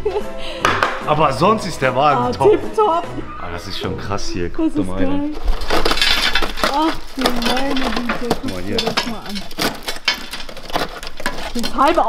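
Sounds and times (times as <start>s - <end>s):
rusted sheet steel crackling: 5.3s - 12.0s
sharp metal cracks: 5.6s - 12.0s.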